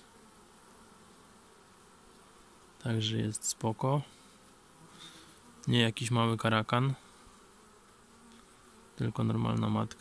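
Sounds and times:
honeybees humming: 0.0s - 10.0s.

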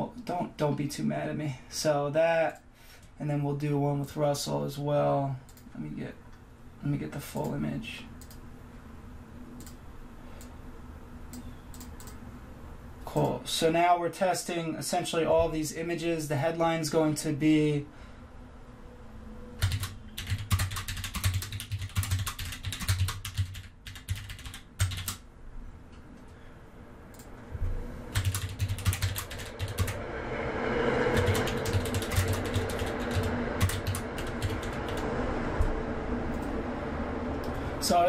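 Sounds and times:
steady background hum: 0.0s - 38.0s
typing on computer keyboard: 11.7s - 12.2s, 19.6s - 25.2s, 28.1s - 30.0s, 31.1s - 35.1s.

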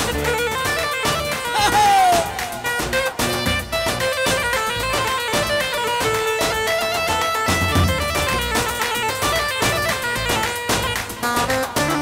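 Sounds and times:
keyboard dance melody: 0.0s - 12.0s
quick drum beat: 7.5s - 11.0s.

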